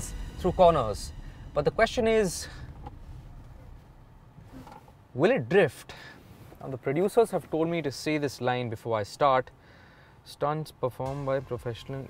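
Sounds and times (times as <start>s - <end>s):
car cabin hum: 0.0s - 8.2s.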